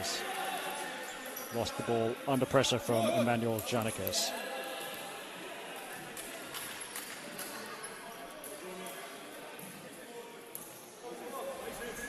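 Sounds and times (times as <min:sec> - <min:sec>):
faint players' voices: 0:00.0 - 0:12.0.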